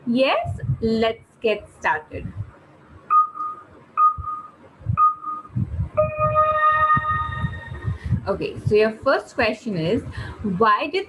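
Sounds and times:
long electronic tone: 3.1 - 8.0
short electronic beeps: 3.1 - 8.0
low irregular thumps: 4.1 - 8.9.

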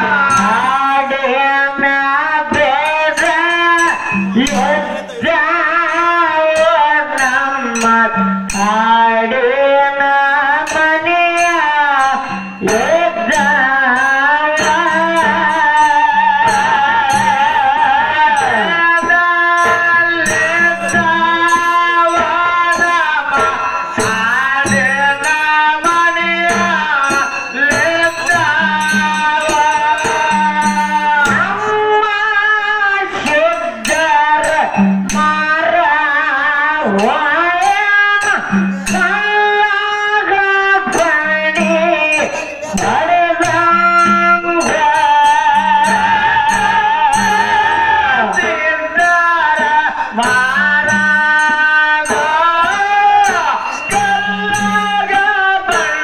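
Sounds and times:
person singing folk song: 0.0 - 56.0
sharp percussion strikes: 0.0 - 56.0.

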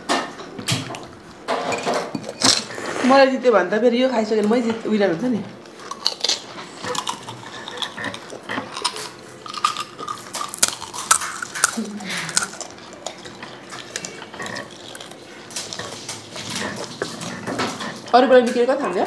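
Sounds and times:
soft voices: 11.7 - 12.6.

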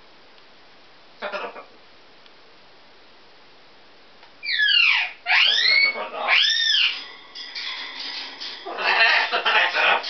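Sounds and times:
parrot whistling loudly: 4.4 - 7.8, 8.6 - 10.0
soft broken parrot calls: 4.4 - 10.0.

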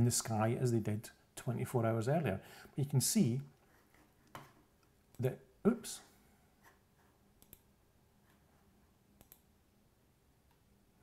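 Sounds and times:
faint computer mouse clicks: 7.4 - 7.7, 9.2 - 9.5.

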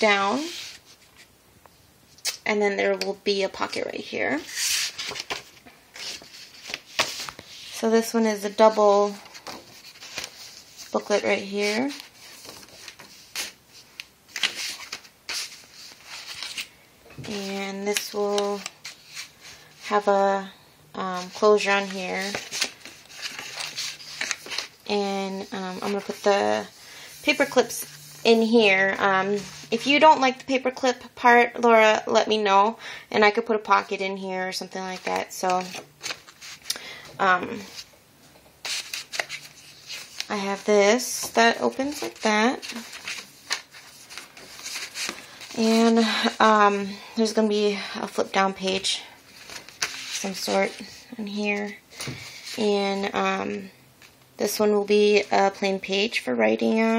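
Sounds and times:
paper rustling: 4.4 - 7.8, 9.0 - 20.0, 21.2 - 29.9, 34.9 - 36.7, 38.6 - 46.4, 48.6 - 51.0
album pages flipping: 4.5 - 7.8, 9.1 - 11.0, 11.6 - 19.6, 21.2 - 24.8, 34.9 - 36.8, 38.6 - 45.9, 48.7 - 50.9.

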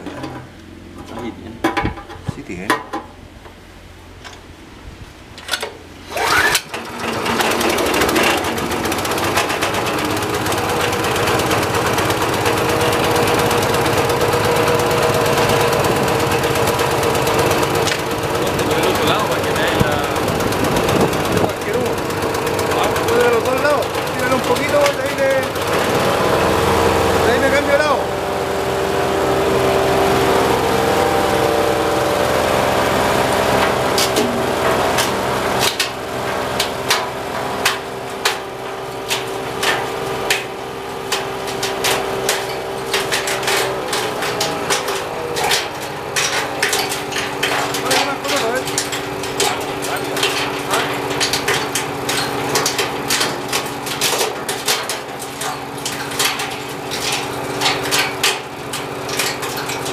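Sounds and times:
petrol engine starting and running: 0.0 - 59.9.

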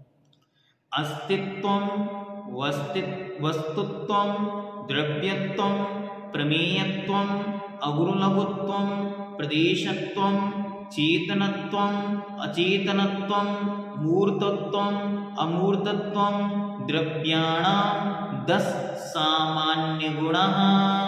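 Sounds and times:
man chanting: 0.9 - 21.0.

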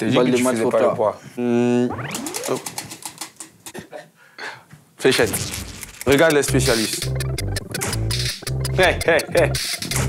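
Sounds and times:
prize wheel pointer ticking: 6.0 - 9.8.

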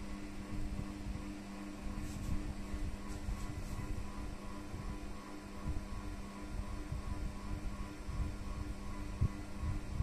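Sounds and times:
projector fan hum: 0.0 - 10.0.

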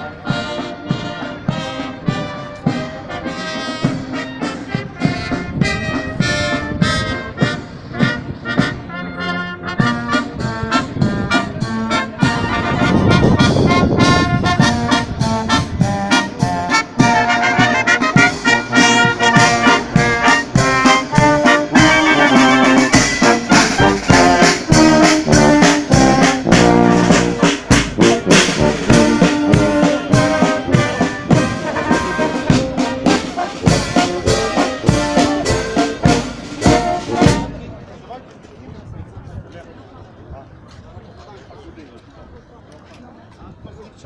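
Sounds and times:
brass band playing: 0.0 - 37.9.

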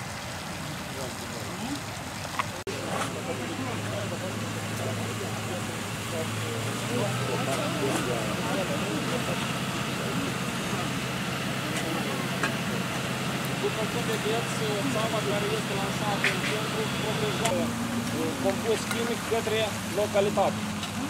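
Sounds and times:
fire engine pump humming: 0.0 - 21.0
voices talking: 0.0 - 21.0
water spray hissing: 0.0 - 21.0.

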